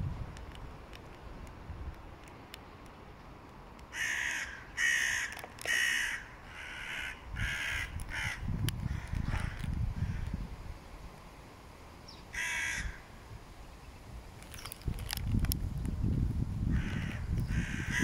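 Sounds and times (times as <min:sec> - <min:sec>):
crow cawing: 0:03.9 - 0:10.3, 0:12.3 - 0:13.1, 0:16.7 - 0:18.0.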